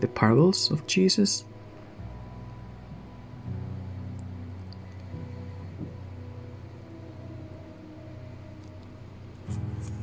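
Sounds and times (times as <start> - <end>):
soft music of held notes: 0.0 - 10.0.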